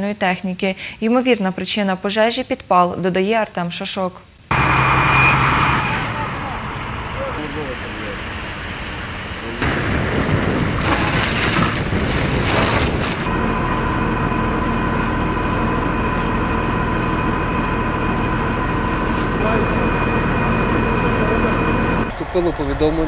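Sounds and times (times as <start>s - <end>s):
engine drone: 4.5s - 23.0s
high pump whine: 4.5s - 23.0s.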